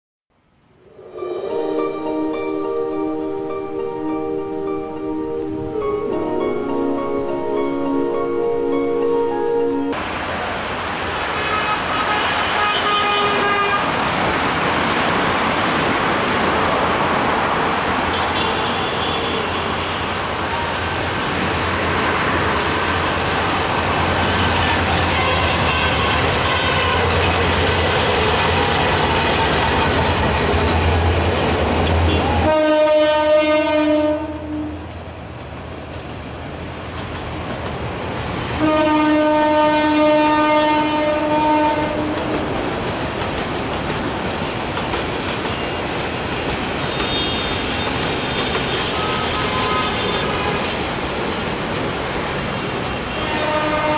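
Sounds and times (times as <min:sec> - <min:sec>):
train horn blast: 0:11.4 - 0:14.0, 0:24.2 - 0:27.6, 0:31.9 - 0:34.9, 0:38.4 - 0:42.4, 0:46.9 - 0:50.7, 0:53.1 - 0:53.9.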